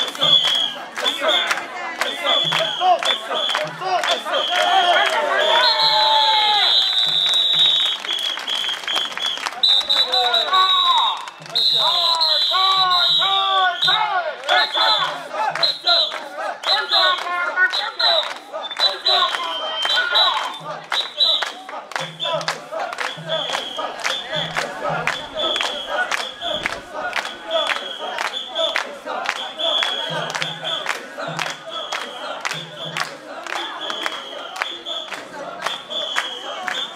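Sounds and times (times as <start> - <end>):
people chanting in unison: 0.0 - 5.7, 12.8 - 36.9
crowd noise: 0.0 - 36.9.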